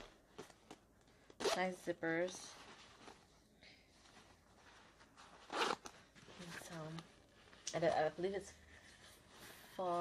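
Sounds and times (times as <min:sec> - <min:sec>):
zipper rasp: 0:05.4 - 0:06.0.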